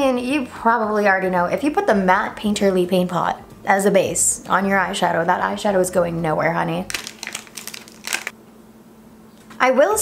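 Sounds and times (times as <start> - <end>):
packaging crinkling: 6.9 - 8.4.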